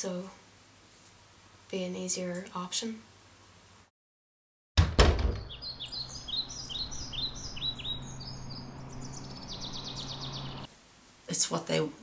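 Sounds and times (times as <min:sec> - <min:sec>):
heavy thumps: 0:04.8 - 0:05.5
small birds chirping: 0:05.4 - 0:10.7.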